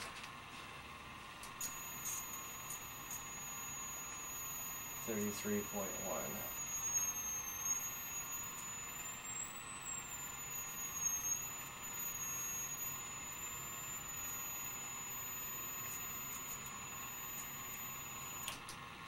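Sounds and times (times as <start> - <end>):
high-pitched electrical whine: 0.0 - 19.0
steady hiss: 1.6 - 18.6.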